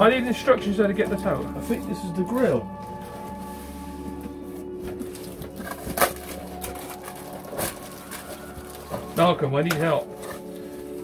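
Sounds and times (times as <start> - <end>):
background music: 0.0 - 11.0
packaging rustling: 0.0 - 11.0.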